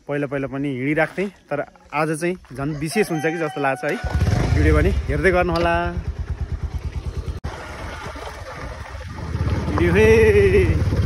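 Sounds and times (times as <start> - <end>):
motorcycle engine idling: 4.0 - 11.0.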